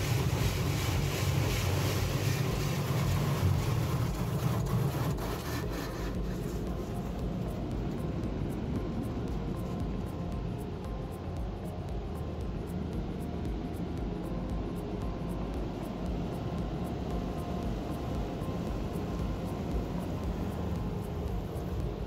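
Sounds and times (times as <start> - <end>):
water jets spraying on car: 0.0 - 11.4, 15.7 - 22.0.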